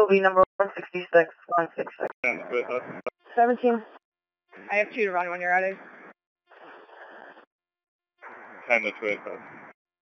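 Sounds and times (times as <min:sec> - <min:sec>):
voice over radio: 0:00.6 - 0:03.1, 0:08.7 - 0:09.4
radio static bursts: 0:00.6 - 0:04.0, 0:04.6 - 0:07.5, 0:08.2 - 0:09.7.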